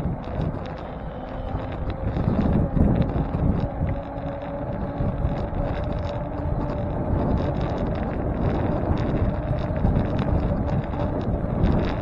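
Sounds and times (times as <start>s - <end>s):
tyre rumble on asphalt: 0.0s - 12.0s
wind buffeting microphone: 0.0s - 12.0s.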